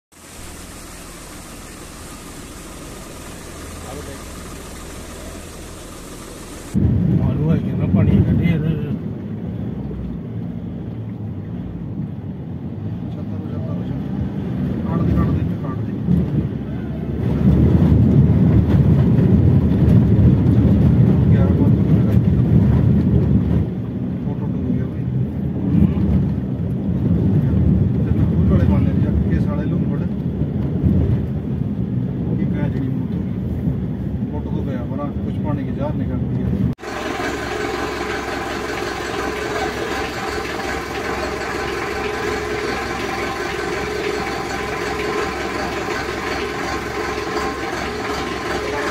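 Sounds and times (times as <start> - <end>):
vehicle rumbling through water: 0.1 - 48.9
indistinct voices: 36.8 - 48.9.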